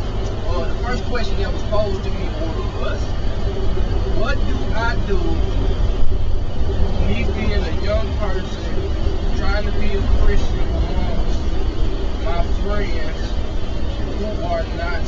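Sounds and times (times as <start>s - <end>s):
car engine and road rumble: 0.0s - 15.0s
man talking: 0.3s - 3.2s, 4.1s - 5.5s, 6.9s - 13.4s, 14.0s - 15.0s.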